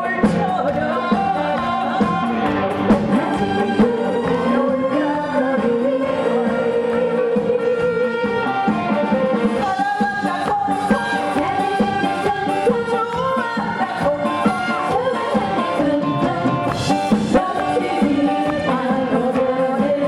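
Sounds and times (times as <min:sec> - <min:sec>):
live band playing: 0:00.0 - 0:20.0
woman singing into a microphone: 0:00.0 - 0:20.0.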